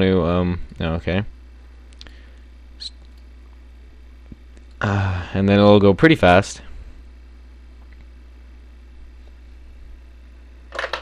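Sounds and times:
low electrical hum: 0.0s - 11.0s
faint clicks: 1.9s - 3.6s.

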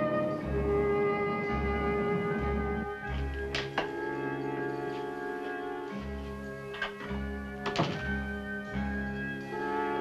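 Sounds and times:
background music of held chords: 0.0s - 10.0s
door shutting: 6.7s - 8.2s.

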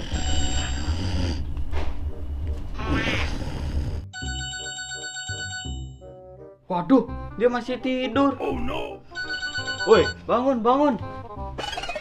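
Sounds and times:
phone alarm ringtone beeps: 4.2s - 6.1s, 9.1s - 10.2s.

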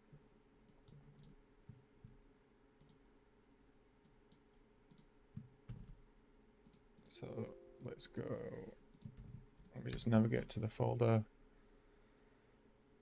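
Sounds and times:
low room hum: 0.0s - 13.0s
computer mouse clicks: 2.8s - 3.0s, 4.0s - 6.0s, 6.6s - 7.1s, 8.9s - 10.1s.

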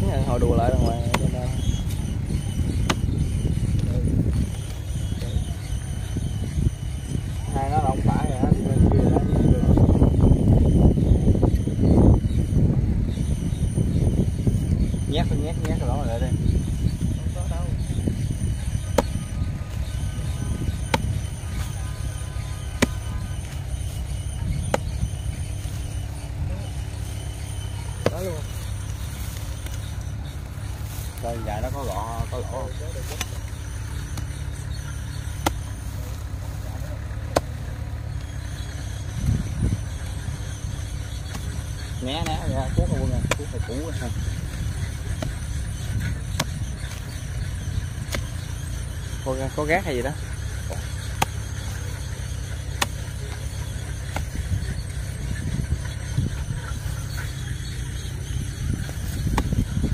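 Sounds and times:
steady low rumble: 0.0s - 59.9s.

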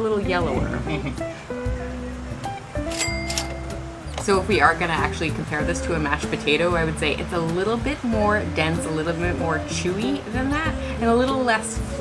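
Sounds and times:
sustained notes over low bass: 0.3s - 1.3s
bright high accent: 2.9s - 4.2s.

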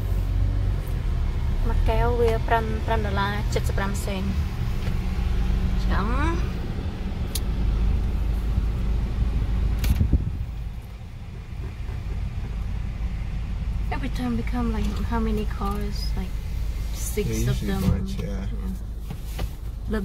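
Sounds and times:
car engine rumble: 0.0s - 20.0s
sharp click: 9.8s - 10.1s.

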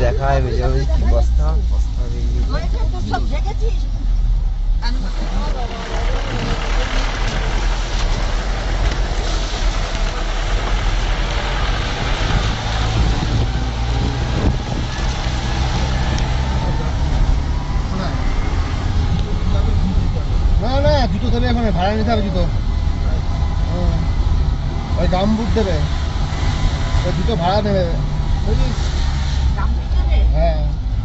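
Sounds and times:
vehicle engine and road noise: 0.0s - 31.0s.

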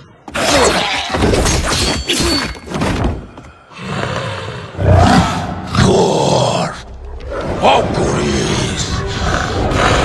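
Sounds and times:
monster roaring growls: 3.8s - 10.0s.

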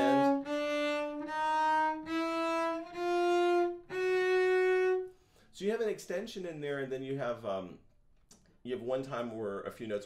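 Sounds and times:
solo cello slow bowed notes: 0.0s - 5.1s.

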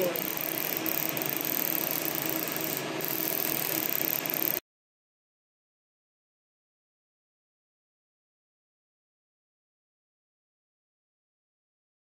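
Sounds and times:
laser machine whirring and hissing: 0.0s - 4.6s.

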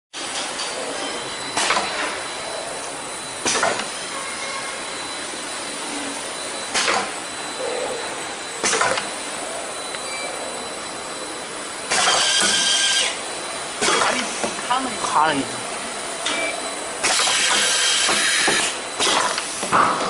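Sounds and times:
filling machine running: 0.2s - 20.0s.

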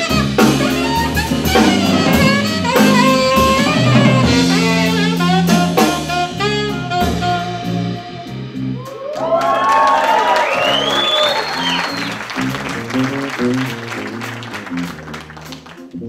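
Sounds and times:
electric bass: 0.0s - 8.8s, 11.5s - 16.0s
jazz saxophone solo: 0.0s - 8.8s, 11.0s - 16.0s
drums: 0.0s - 16.0s
piano: 0.0s - 16.0s
audience whoops: 8.8s - 14.8s
audience applause: 8.9s - 16.0s.

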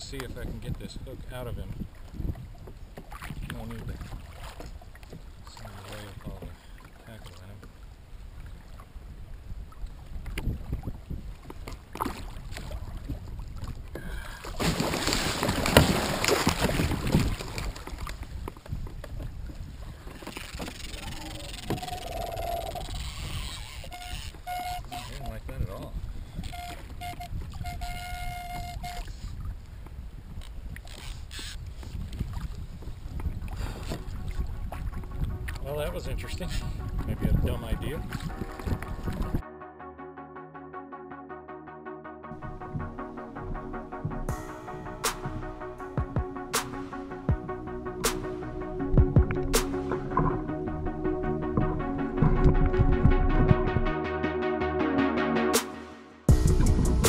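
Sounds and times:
wind on microphone: 0.0s - 6.6s, 7.6s - 39.4s, 42.3s - 45.4s, 48.9s - 54.0s
water sloshing against kayak: 0.0s - 39.4s.

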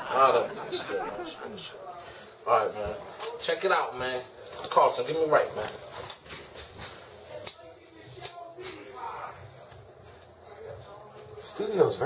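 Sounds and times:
faint low speech: 5.4s - 12.0s.

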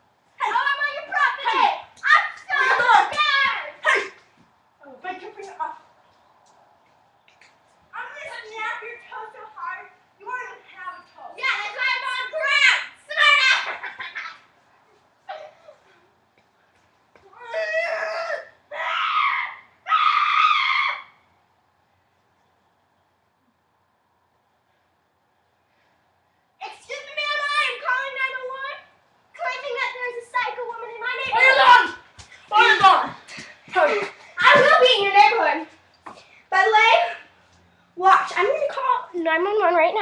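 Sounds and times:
children calling out: 0.4s - 4.2s, 10.5s - 14.4s, 17.3s - 21.2s, 29.4s - 35.6s
child screaming in play: 17.4s - 21.1s.

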